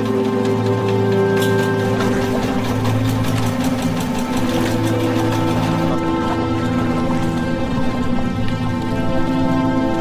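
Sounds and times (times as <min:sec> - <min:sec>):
background music with held tones: 0:00.0 - 0:10.0
boat engine running: 0:00.0 - 0:10.0.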